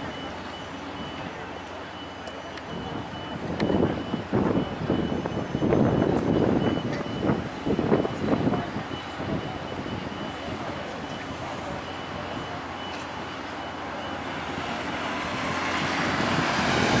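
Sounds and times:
city street noise: 0.0s - 17.0s
road vehicle approaching: 0.0s - 17.0s
voices: 0.0s - 17.0s.

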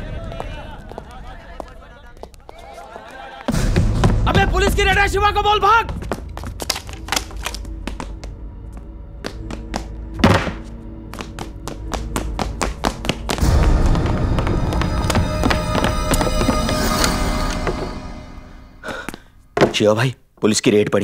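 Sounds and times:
tense film score: 0.0s - 19.6s.

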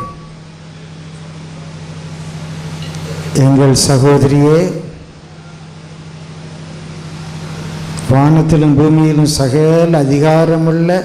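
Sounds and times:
public-address system hum: 0.0s - 11.0s.

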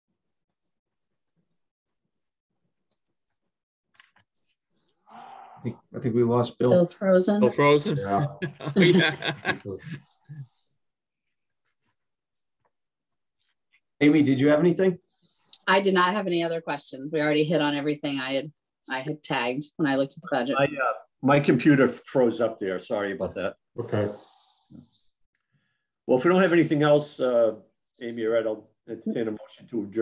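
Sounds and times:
person speaking over video call: 5.2s - 10.5s, 14.0s - 15.0s, 15.6s - 24.8s, 26.1s - 30.0s
group laughter: 8.0s - 10.4s.

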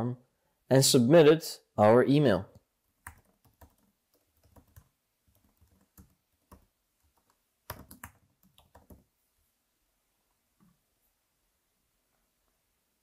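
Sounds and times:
computer keyboard typing: 2.5s - 9.1s.

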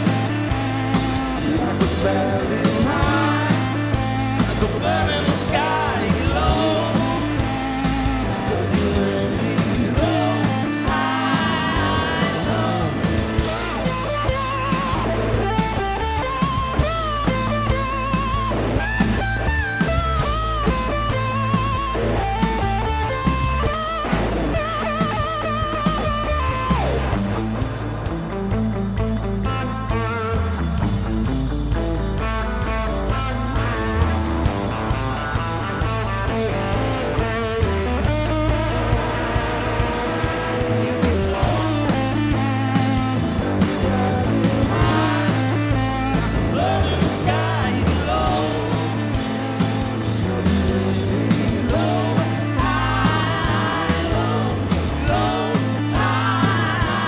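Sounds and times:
bass line: 0.0s - 57.0s
bending lead melody: 0.0s - 57.0s
drum kit: 0.0s - 57.0s
electric guitar: 0.0s - 57.0s.

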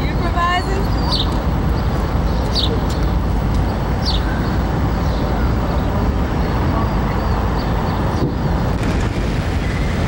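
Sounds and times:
city street and vehicle rumble: 0.0s - 10.0s.

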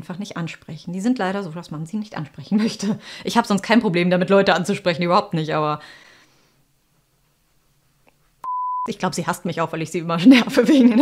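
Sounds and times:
high censor beep: 8.4s - 8.9s.

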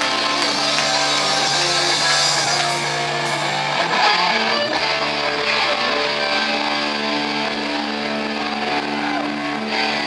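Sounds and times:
punk rock band ringing chord: 0.0s - 10.0s.

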